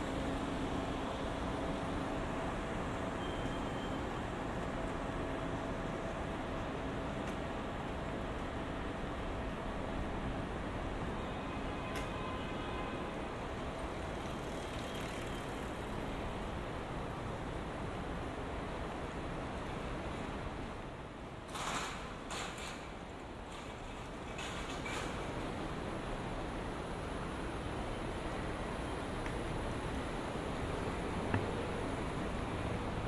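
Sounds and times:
traffic hum: 0:04.0 - 0:33.0.

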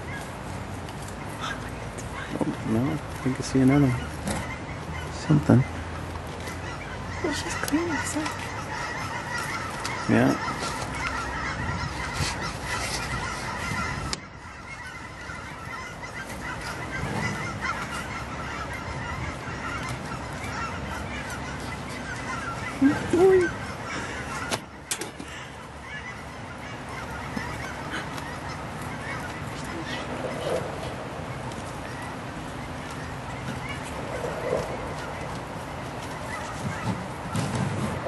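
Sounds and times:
birds calling: 0:00.0 - 0:38.0.

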